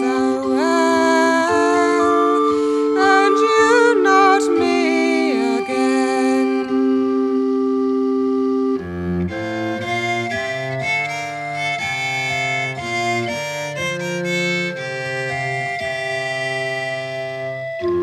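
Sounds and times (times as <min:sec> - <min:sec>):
instrumental folk melody: 0:00.0 - 0:18.0.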